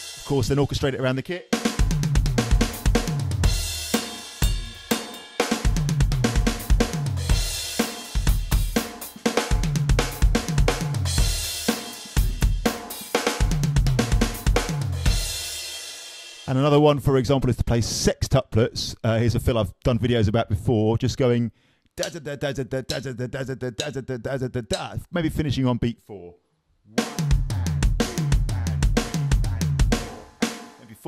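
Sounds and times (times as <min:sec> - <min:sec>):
electronic drum fills on toms: 0:01.5 - 0:16.5, 0:27.0 - 0:30.8.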